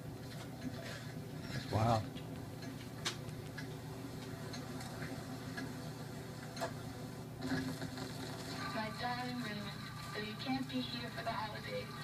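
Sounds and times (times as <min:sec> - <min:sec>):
record surface hum: 0:00.0 - 0:12.0
record crackle clicks: 0:02.1 - 0:05.7.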